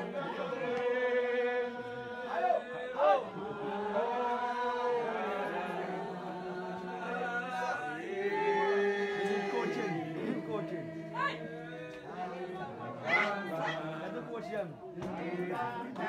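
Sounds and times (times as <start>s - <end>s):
congregation singing a hymn: 0.0s - 16.0s
loud cries: 13.0s - 14.0s.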